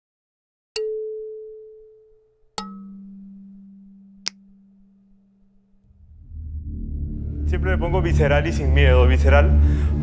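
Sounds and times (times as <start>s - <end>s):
struck ringing tones: 0.8s - 5.3s.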